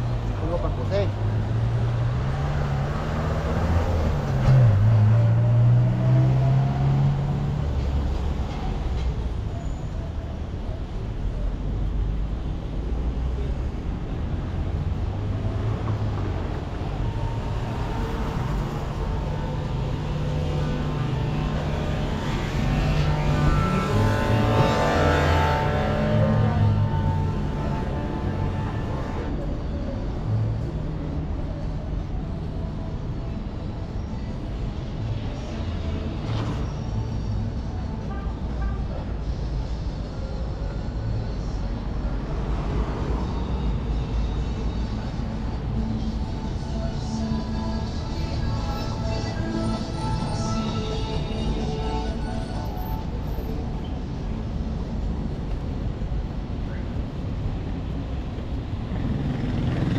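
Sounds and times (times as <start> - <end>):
cars and motorcycles passing: 0.0 - 9.5, 11.4 - 37.9, 39.8 - 59.9
faint music: 15.3 - 59.9.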